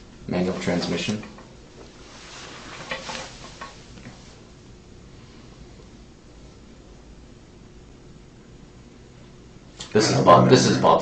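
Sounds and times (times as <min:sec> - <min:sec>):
recording hiss: 0:00.0 - 0:11.0
paper and photographs rustling: 0:02.0 - 0:04.2.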